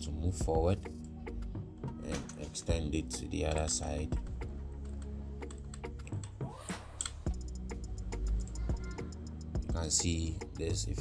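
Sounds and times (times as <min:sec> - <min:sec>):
background music: 0:00.0 - 0:11.0
keyboard keys tapping: 0:01.0 - 0:06.4.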